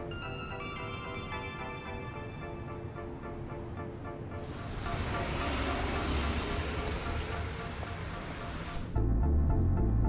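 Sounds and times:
car road noise passing: 3.9 - 9.0.

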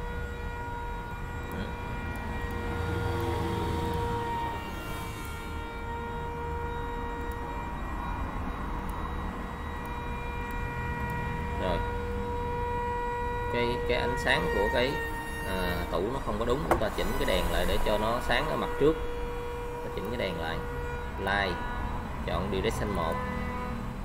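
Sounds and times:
steady machine hum: 0.0 - 24.0.

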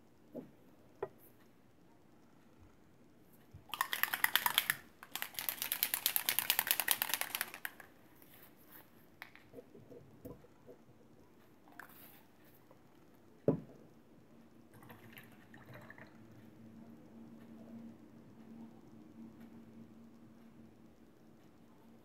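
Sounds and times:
bottle shaken rattling: 3.7 - 7.9.

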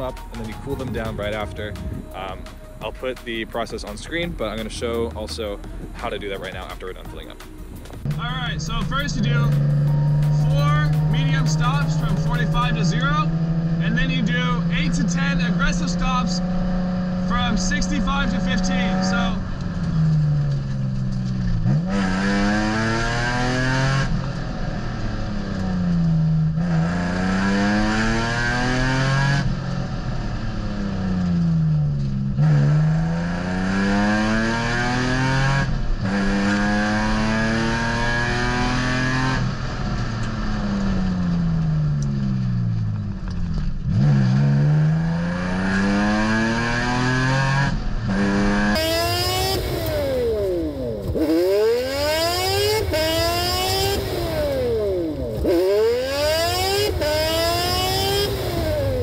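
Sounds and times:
car engine revving through loud exhaust: 3.5 - 59.0.

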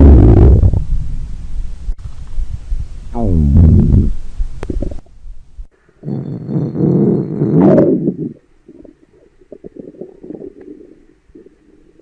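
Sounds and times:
stomach growling: 0.0 - 0.9, 3.2 - 5.1, 6.0 - 12.0.

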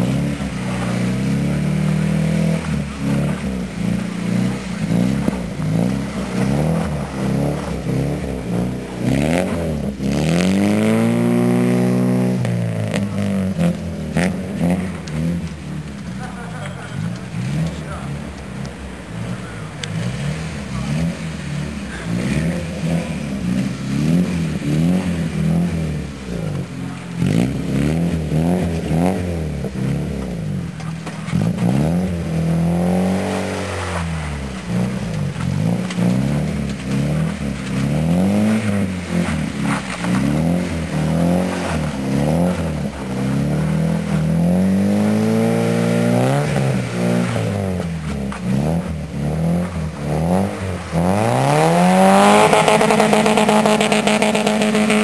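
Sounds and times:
car engine revving: 0.0 - 55.0.

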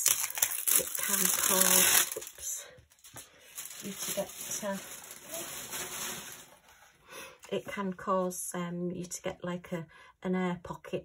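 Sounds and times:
canvas rustling and rubbing: 3.6 - 6.9.

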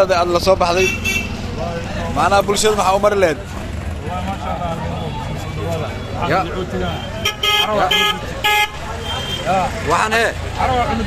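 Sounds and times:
vehicle horn honking: 0.8 - 1.4, 6.8 - 9.5.

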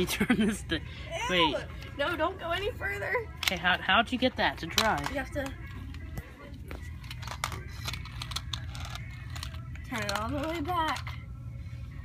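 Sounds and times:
low steady hum: 0.0 - 12.0
wind-up toy clicking and rattling: 7.0 - 11.2.

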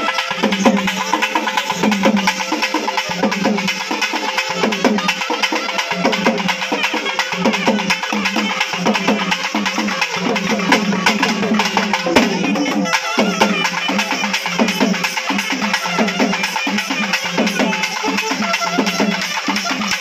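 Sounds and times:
barrel drums beaten fast: 0.0 - 20.0.

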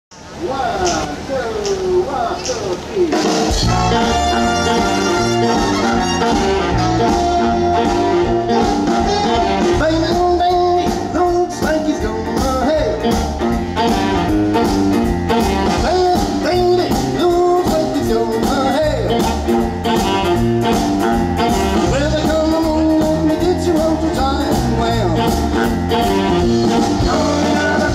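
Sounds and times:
big band playing: 0.2 - 27.9
drum kit: 3.0 - 27.9
saxophone section: 3.1 - 10.5, 13.0 - 16.8, 18.8 - 23.6, 24.8 - 27.9.

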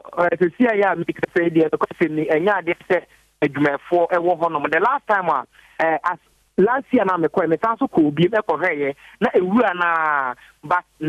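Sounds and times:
man speaking over telephone: 0.0 - 11.0.

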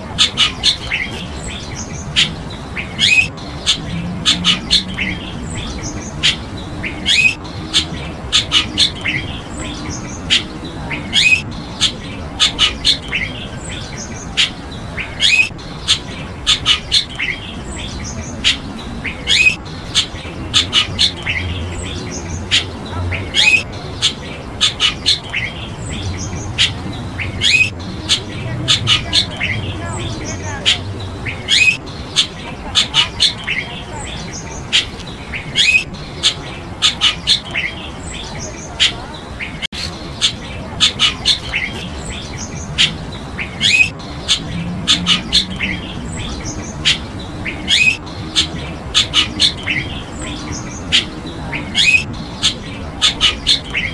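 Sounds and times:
birds giving sharp calls: 0.0 - 53.9.

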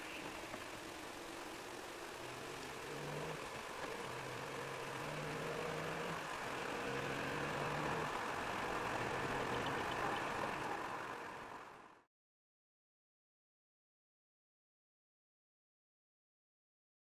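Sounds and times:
car engine accelerating: 0.0 - 12.1.

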